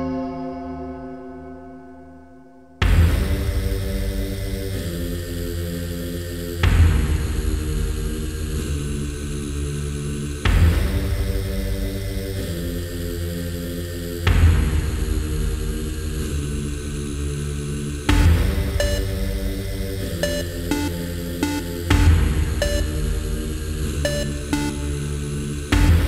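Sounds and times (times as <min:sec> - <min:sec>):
low synth drone: 0:00.0 - 0:26.0
techno track with heavy bass: 0:02.8 - 0:26.0.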